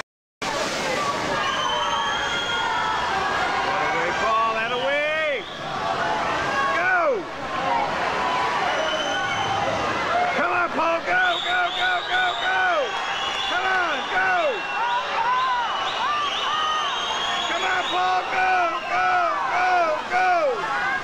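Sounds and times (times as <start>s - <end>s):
crowd and pool noise: 0.4s - 21.0s
spectators yelling encouragement: 1.1s - 21.0s.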